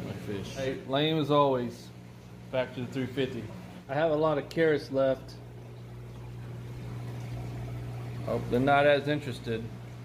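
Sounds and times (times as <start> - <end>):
aquarium equipment humming: 0.0 - 10.0.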